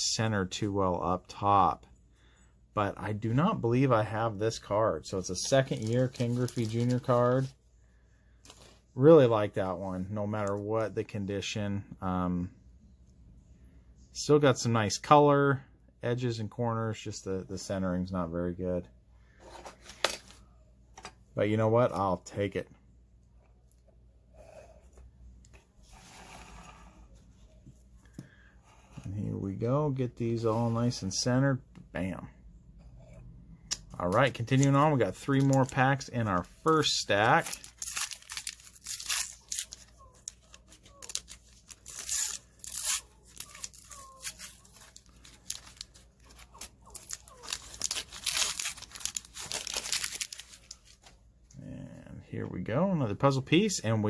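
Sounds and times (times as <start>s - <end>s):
soft breath: 2.0s - 2.7s, 25.8s - 29.1s
cardboard cards handling: 5.2s - 7.5s, 34.1s - 51.2s
wax-paper wrapper tearing and crumpling: 5.4s - 7.5s, 34.4s - 51.1s.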